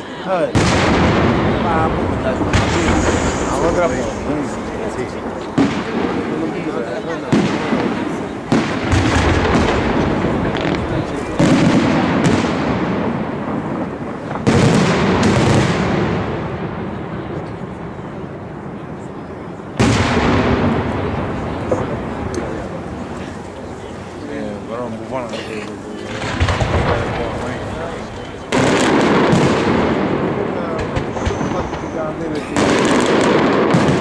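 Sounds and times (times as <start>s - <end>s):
firework shells bursting: 0.5s - 16.5s, 25.3s - 34.0s.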